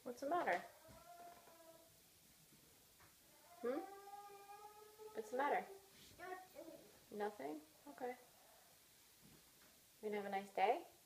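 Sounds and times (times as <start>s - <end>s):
child whining: 0.7s - 1.9s, 3.3s - 6.9s.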